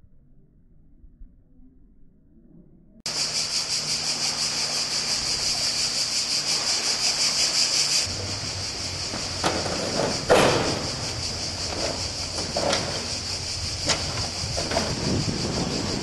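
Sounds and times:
low steady hum: 0.0s - 14.9s
cicadas buzzing: 3.1s - 16.0s.

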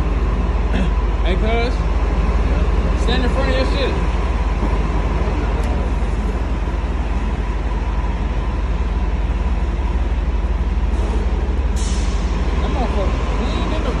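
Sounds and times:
vehicle engine idling: 0.0s - 14.0s.

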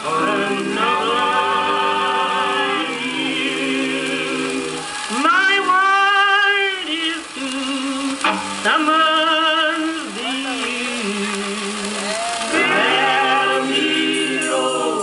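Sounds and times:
live band with vibrato singing: 0.0s - 15.0s.

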